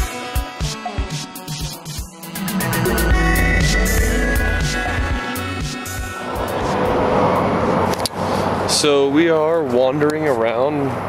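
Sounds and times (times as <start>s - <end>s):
background music: 0.0s - 7.0s.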